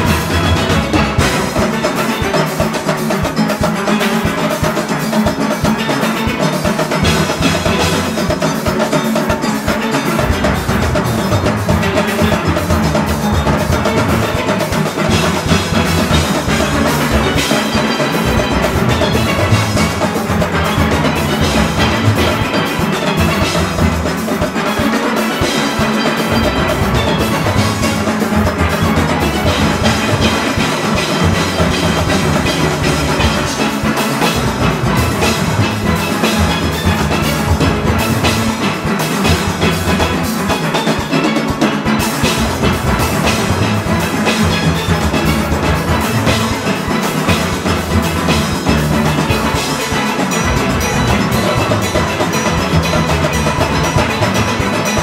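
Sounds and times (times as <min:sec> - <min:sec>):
congas: 0:00.0 - 0:55.0
cymbals: 0:00.0 - 0:55.0
drum kit: 0:00.0 - 0:55.0
steelpan orchestra playing: 0:00.0 - 0:55.0.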